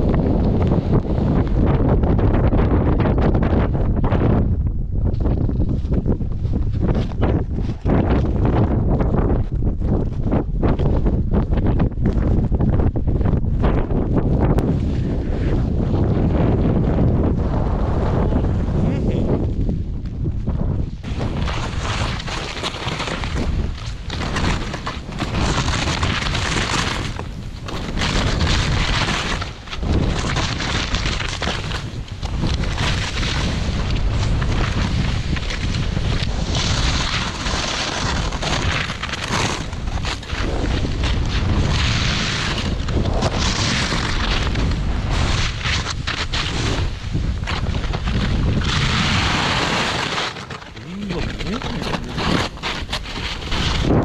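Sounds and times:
wind buffeting microphone: 0.0 - 54.0
snowboard scraping icy snow: 14.7 - 16.9, 21.0 - 54.0.

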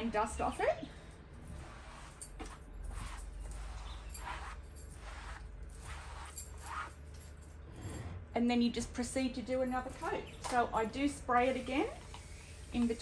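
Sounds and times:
cloth wiping over fabric: 1.5 - 7.0.

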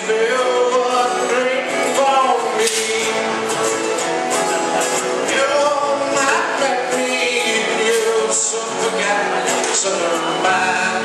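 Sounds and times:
strummed acoustic guitar: 0.0 - 11.0
people singing together: 4.8 - 11.0.

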